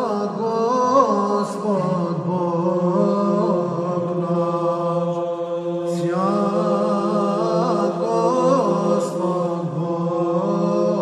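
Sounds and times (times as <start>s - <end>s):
male choir chanting: 0.0s - 11.0s.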